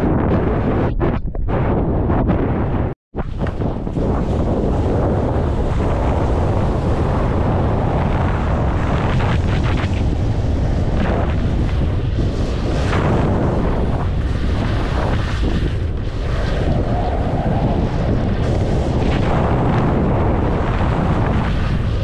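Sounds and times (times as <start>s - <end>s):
low rumble: 0.0s - 22.0s
wind buffeting microphone: 0.0s - 22.0s.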